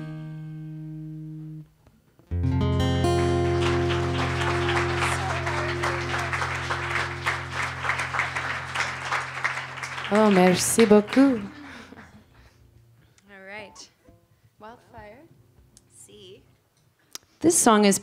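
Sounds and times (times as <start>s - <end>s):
acoustic and slide guitar chords: 0.0s - 1.7s, 2.3s - 12.6s
light clapping: 3.2s - 12.2s.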